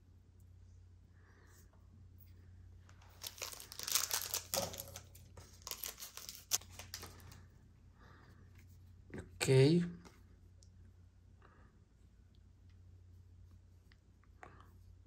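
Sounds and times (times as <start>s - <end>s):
foil wrapper tearing and crinkling: 3.0s - 7.3s.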